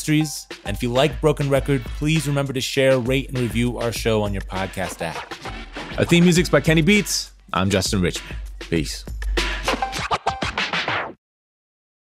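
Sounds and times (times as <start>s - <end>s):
steady deep bass: 0.0s - 9.8s
theme music with choppy strokes: 0.0s - 11.2s.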